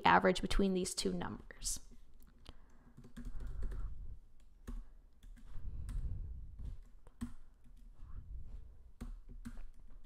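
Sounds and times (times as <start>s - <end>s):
keyboard keys clicking: 3.0s - 6.0s, 9.0s - 10.0s.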